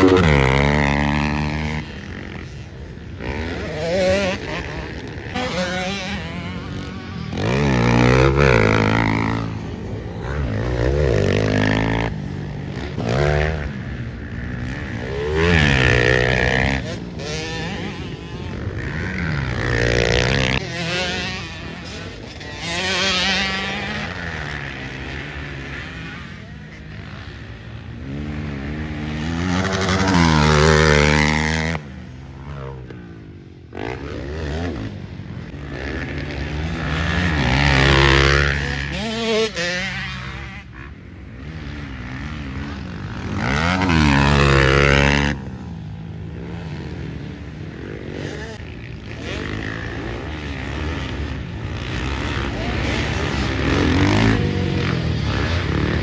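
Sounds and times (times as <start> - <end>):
dirt bike engines revving: 0.0 - 56.0.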